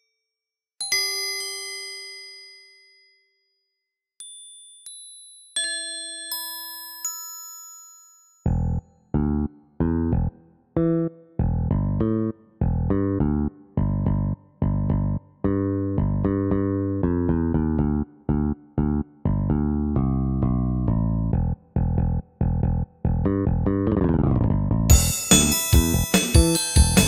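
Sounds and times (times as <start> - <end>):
plucked bass guitar notes: 8.5 - 27.0.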